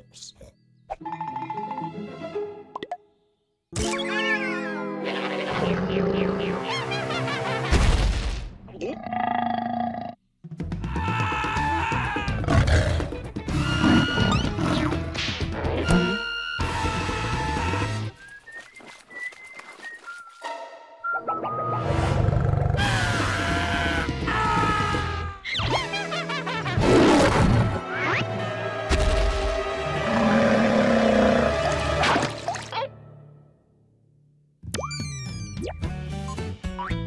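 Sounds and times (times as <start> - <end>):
high whistle-like tune: 15.8 - 16.9.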